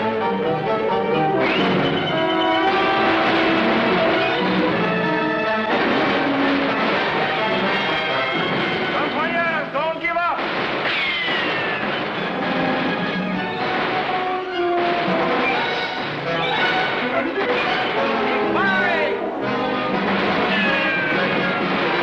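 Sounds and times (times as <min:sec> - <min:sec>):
orchestral film score: 0:00.0 - 0:10.7, 0:11.3 - 0:22.0
musket shots: 0:01.4 - 0:09.3, 0:10.4 - 0:18.2, 0:19.5 - 0:22.0
voices shouting: 0:15.4 - 0:19.3, 0:20.3 - 0:21.6.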